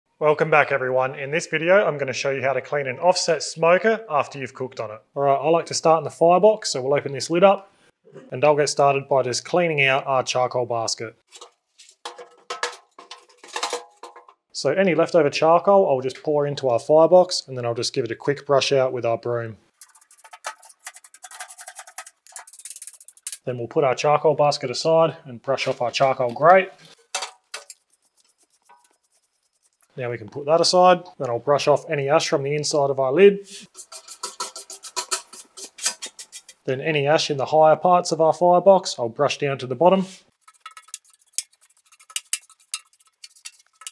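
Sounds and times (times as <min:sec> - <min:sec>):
brush scrubbing steel: 0:11.3 - 0:14.3, 0:19.7 - 0:23.4, 0:26.8 - 0:30.0, 0:33.6 - 0:36.7, 0:40.1 - 0:43.9
metal basket clanking and scraping: 0:11.3 - 0:14.4, 0:19.8 - 0:23.4, 0:26.9 - 0:27.8, 0:33.7 - 0:36.7.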